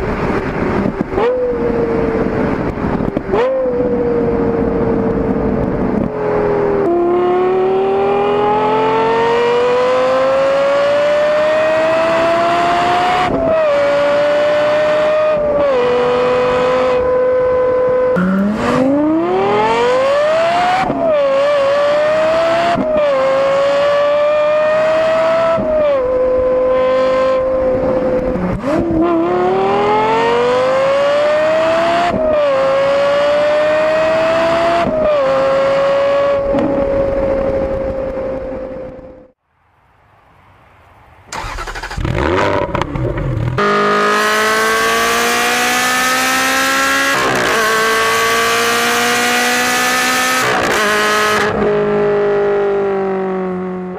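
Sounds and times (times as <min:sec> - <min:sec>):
car engine accelerating hard: 0:00.0 - 0:39.4, 0:41.3 - 0:53.9.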